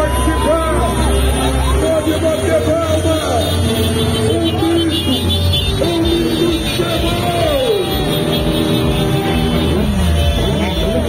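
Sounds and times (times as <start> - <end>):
motorcycle engines revving: 0.0 - 11.0
music: 0.0 - 11.0.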